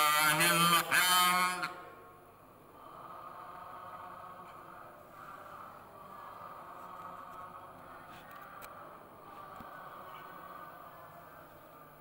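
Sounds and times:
man chanting prayer amplified: 0.0s - 2.0s
faint sound system hum: 0.0s - 12.0s.

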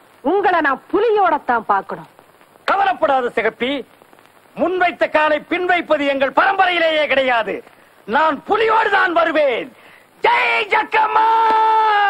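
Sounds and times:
film dialogue speech: 0.2s - 11.3s.

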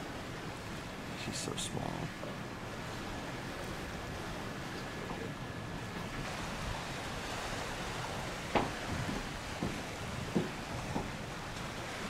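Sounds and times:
open sea: 0.0s - 12.0s.

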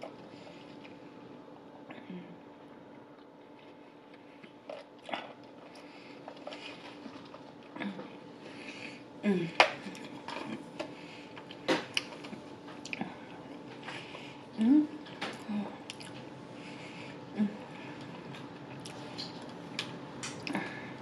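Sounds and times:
person humming: 9.2s - 10.0s, 14.6s - 15.8s, 17.3s - 17.8s.

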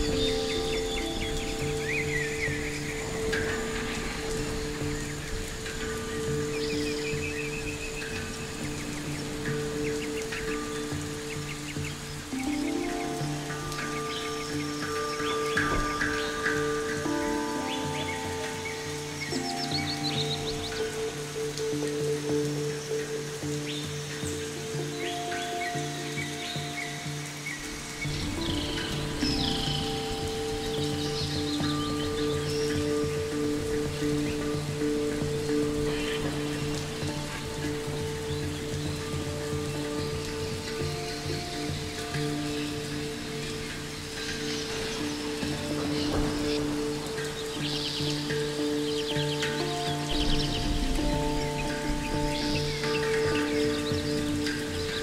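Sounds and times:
ambient electronic drone music: 0.0s - 55.0s
birds chirping: 0.0s - 55.0s
soft forest ambience hiss: 0.0s - 55.0s.

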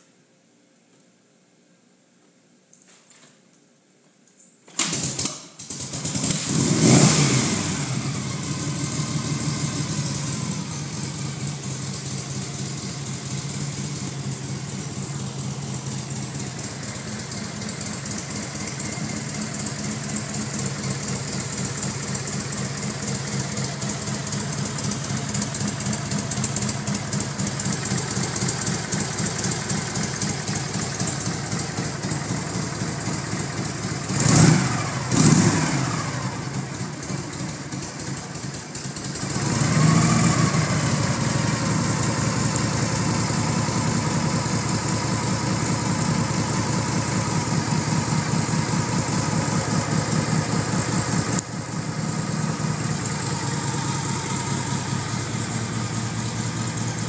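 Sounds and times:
motorcycle engine starting and idling: 4.7s - 57.0s.

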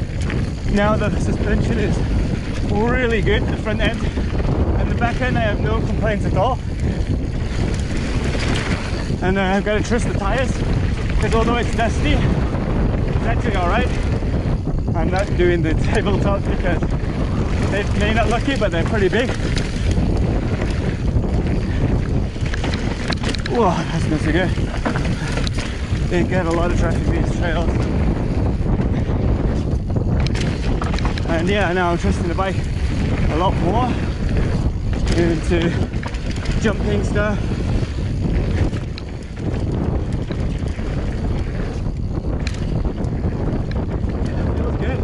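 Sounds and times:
bike clicks and rattles: 0.0s - 45.0s
tyres rolling on dirt trail: 0.0s - 45.0s
wind buffeting microphone: 0.0s - 45.0s.

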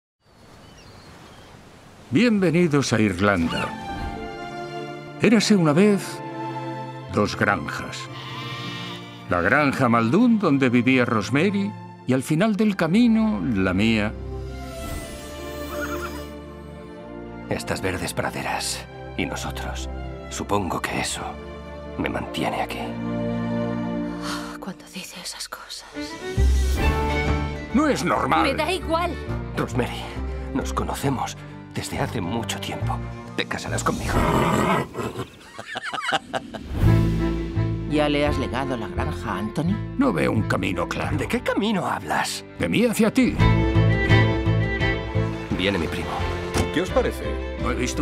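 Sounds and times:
horse whinnying: 8.1s - 9.3s, 15.4s - 16.4s, 34.0s - 35.6s
rough animal call: 8.1s - 9.3s, 15.3s - 16.4s, 34.0s - 35.6s
short gliding animal calls: 15.4s - 16.3s
music with long held notes: 42.6s - 48.0s.

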